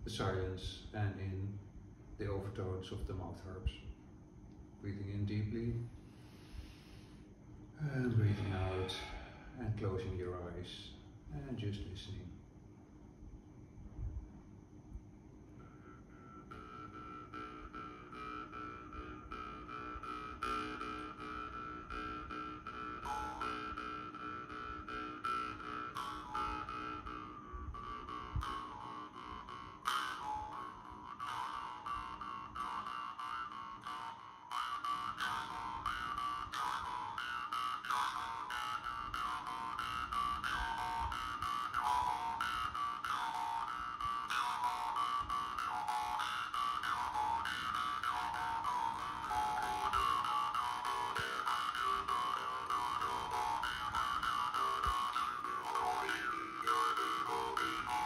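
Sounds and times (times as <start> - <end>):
jaw harps buzzing drone: 7.7 - 12.1, 15.6 - 58.0.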